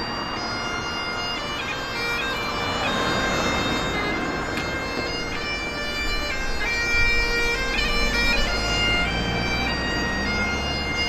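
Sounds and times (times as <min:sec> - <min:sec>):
bagpipes playing melody: 0:00.0 - 0:11.0
car driving past: 0:00.0 - 0:11.0.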